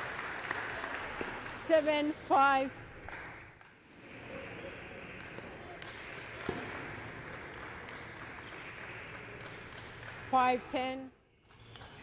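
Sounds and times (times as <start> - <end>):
hum of large hall: 0.0 - 12.0.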